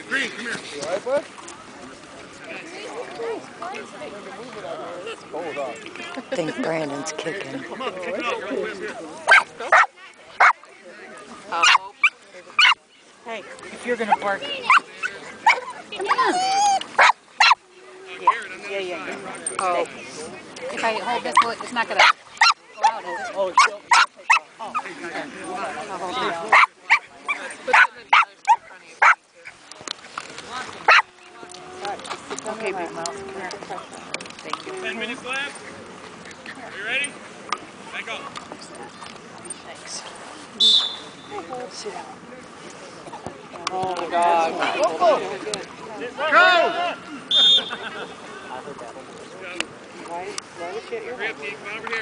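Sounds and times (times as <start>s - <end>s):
dog barking: 9.3s - 10.6s, 17.0s - 17.6s, 23.6s - 24.4s, 26.5s - 29.2s, 30.9s - 31.1s.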